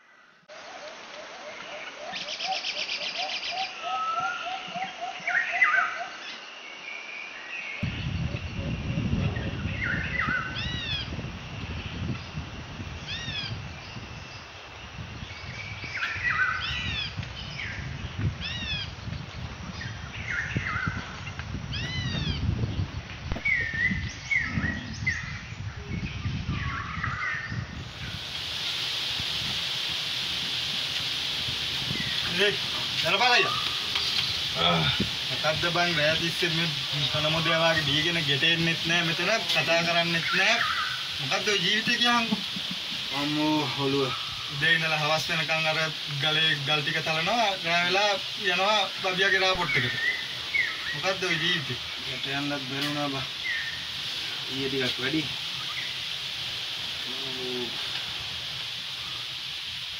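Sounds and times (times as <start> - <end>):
birds calling and chirping: 0.0 - 59.5
steady hiss: 0.0 - 59.9.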